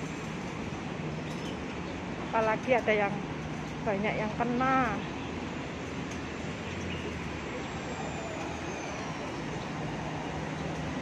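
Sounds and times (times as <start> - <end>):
low traffic hum: 0.0 - 11.0.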